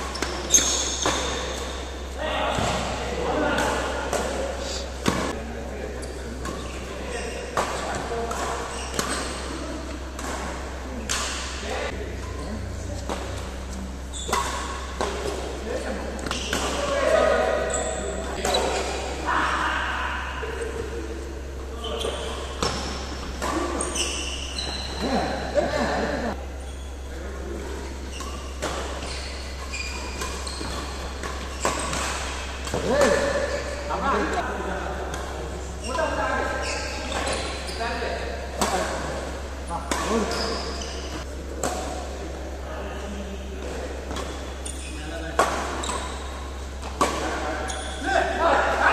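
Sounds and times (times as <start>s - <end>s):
rackets hitting shuttlecock: 0.0s - 5.4s, 6.4s - 12.4s, 13.0s - 19.3s, 19.9s - 26.4s, 27.8s - 34.4s, 36.6s - 42.3s, 43.6s - 48.9s
players' voices: 0.0s - 48.9s.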